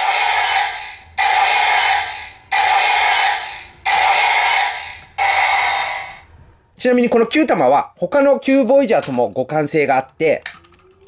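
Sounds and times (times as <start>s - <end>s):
toy robot electronic sound effect: 0.0s - 6.2s.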